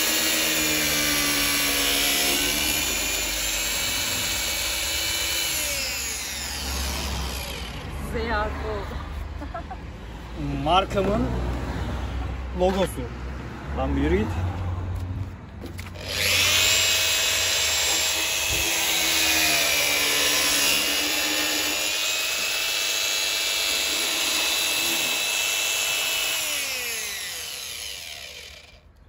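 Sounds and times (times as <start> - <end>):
power tool spinning down: 0.0 - 7.9, 16.0 - 28.8
power tool whining: 0.0 - 8.0, 15.8 - 29.0.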